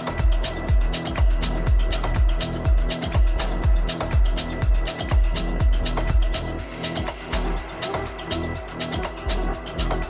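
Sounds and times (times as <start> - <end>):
kick drum: 0.0 - 9.7
hi-hats ticking: 0.0 - 10.0.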